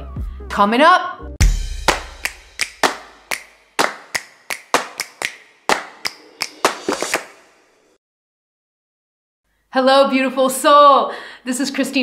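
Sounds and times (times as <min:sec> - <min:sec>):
sharp percussive hits: 0:01.4 - 0:07.9.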